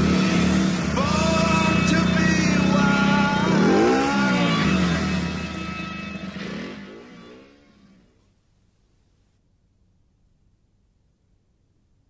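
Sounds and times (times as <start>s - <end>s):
background music: 0.0s - 8.1s
motorcycle engine revving: 0.0s - 8.2s.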